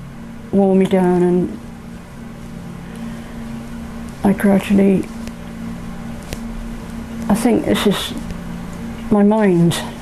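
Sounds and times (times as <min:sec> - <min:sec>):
low hum with faint hiss: 0:00.0 - 0:10.0.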